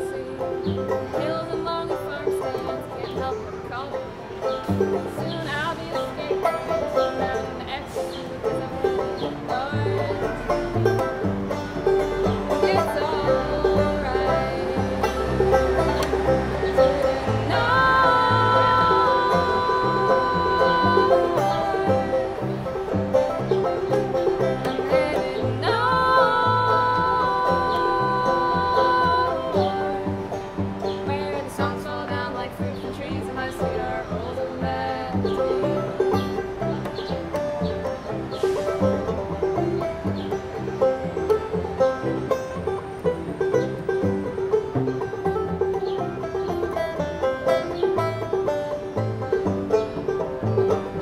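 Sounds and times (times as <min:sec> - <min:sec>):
women singing wordless harmony: 0:00.0 - 0:04.1, 0:05.0 - 0:10.5, 0:12.5 - 0:22.8, 0:24.3 - 0:36.3
banjo playing: 0:00.0 - 0:51.0
cello bass notes: 0:00.0 - 0:51.0.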